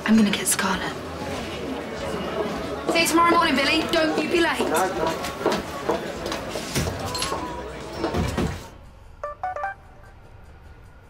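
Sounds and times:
mobile phone electronic beeps: 9.2s - 9.8s.

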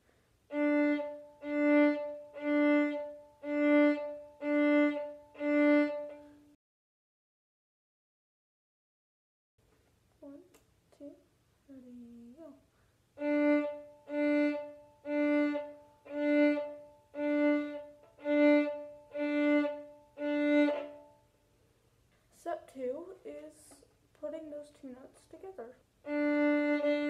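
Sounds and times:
fiddle bow strokes: 13.2s - 21.1s, 26.1s - 27.0s.

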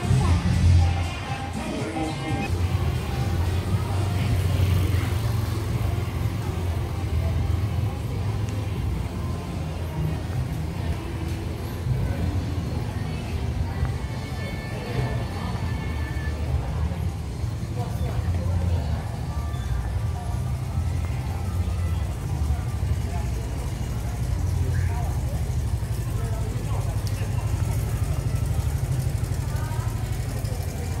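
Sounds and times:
music: 0.0s - 31.0s
traffic rumble: 0.0s - 31.0s
voices: 0.0s - 31.0s.

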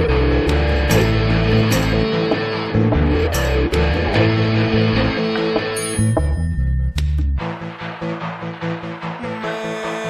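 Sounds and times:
rock guitars and bass: 0.0s - 10.0s.

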